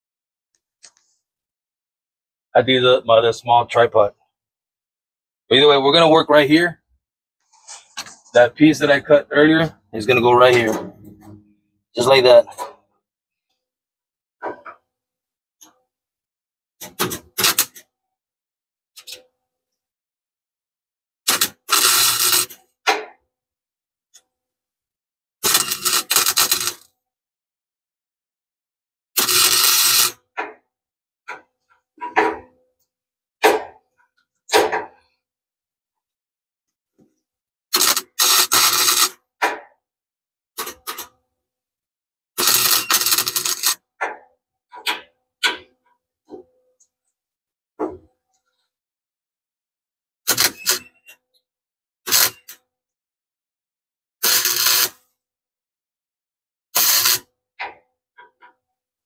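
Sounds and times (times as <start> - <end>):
welding arc crackling: 25.4 - 26.8, 29.2 - 30.1, 37.8 - 39.1, 42.4 - 43.8, 54.2 - 54.9.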